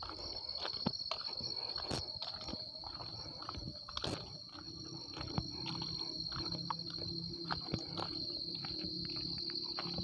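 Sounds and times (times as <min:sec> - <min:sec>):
footsteps crunching on ballast: 0:00.0 - 0:10.0
insects droning: 0:00.0 - 0:10.0.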